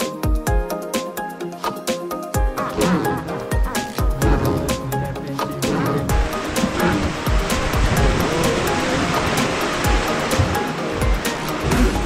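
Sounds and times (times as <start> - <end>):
background music: 0.0 - 12.0
river rapids rushing: 2.6 - 12.0.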